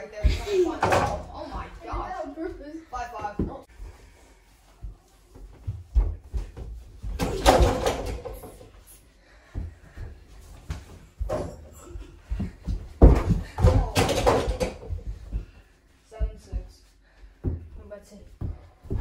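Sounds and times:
thuds of feet and ball on floor: 0.2s - 19.0s
loud crashes against doors: 7.2s - 8.4s.

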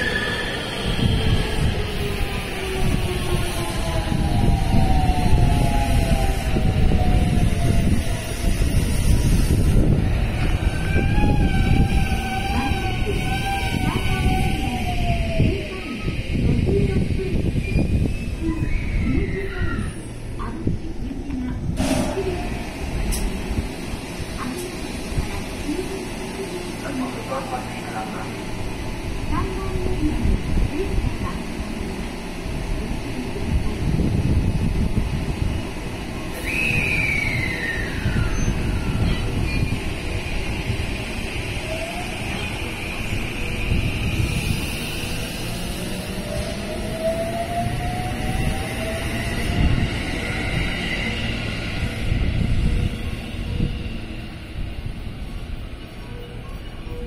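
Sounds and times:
train wheels rumbling on rail: 0.0s - 57.0s.

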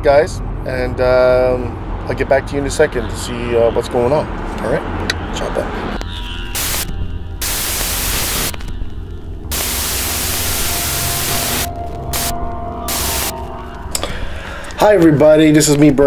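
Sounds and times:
white noise static bursts: 6.5s - 13.4s
low electrical hum: 6.6s - 14.1s.

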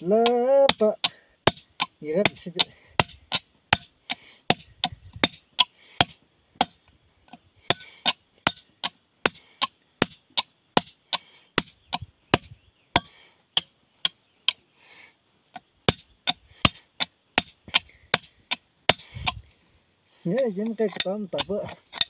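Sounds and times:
hammer striking stone slab: 8.4s - 9.4s.

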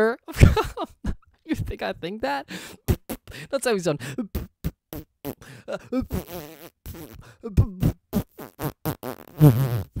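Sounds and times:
person making voiced mouth noises: 2.8s - 3.3s, 4.2s - 10.0s.

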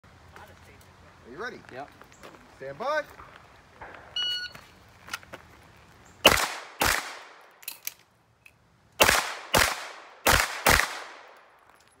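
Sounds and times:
shot timer beep: 4.2s - 4.6s
pistol shots echoing: 6.2s - 7.5s, 9.0s - 11.6s.

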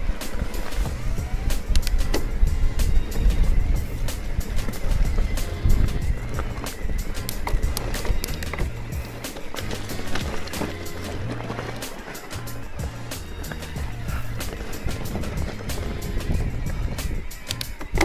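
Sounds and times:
background music with bass line: 0.0s - 18.0s
bike rattling over rocky track: 0.0s - 18.0s.

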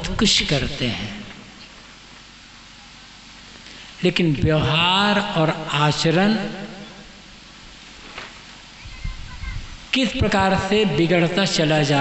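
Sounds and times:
man talking over a microphone: 0.0s - 1.3s, 4.0s - 6.8s, 9.9s - 12.0s.

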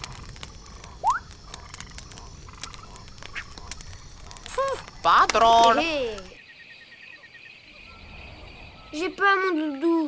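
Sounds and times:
faint crackles: 0.0s - 6.4s
night background: 0.0s - 10.0s.

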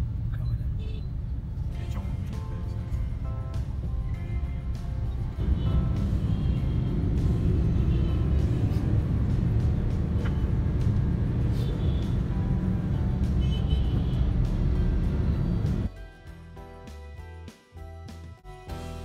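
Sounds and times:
car road and engine rumble: 0.0s - 15.9s
background music: 1.6s - 19.0s.

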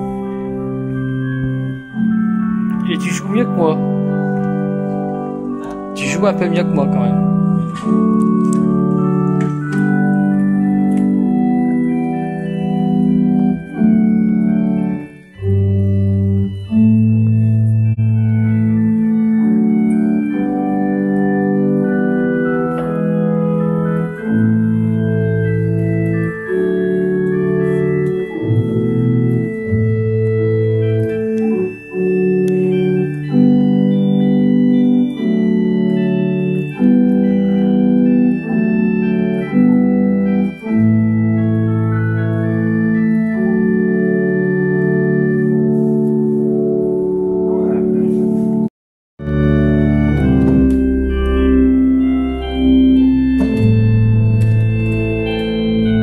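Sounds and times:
electronic organ chords: 0.0s - 56.0s
low bass organ notes: 0.0s - 56.0s.

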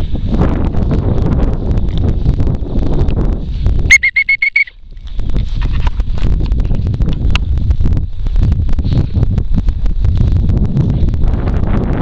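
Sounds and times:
wind buffeting microphone: 0.0s - 12.0s
trilled whistle blast: 3.9s - 4.8s.

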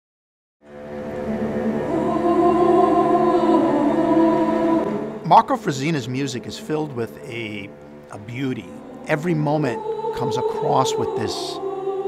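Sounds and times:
choir holding a chord: 0.6s - 12.0s.

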